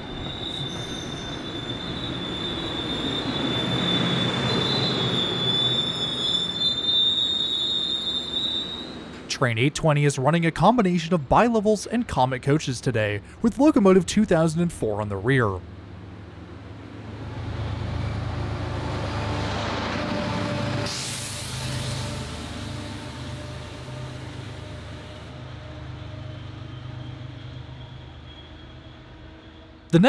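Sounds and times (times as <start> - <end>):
train wheels on track: 0.0 - 9.3, 16.0 - 30.0
diesel locomotive hum: 0.0 - 9.8, 11.0 - 30.0.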